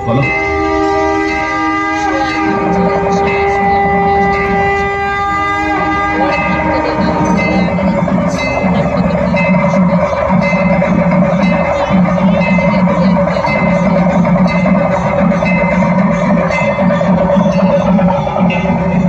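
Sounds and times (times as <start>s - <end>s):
long horn-like notes: 0.0s - 19.0s
pulsing beat: 0.0s - 19.0s
ringing bells: 0.0s - 19.0s.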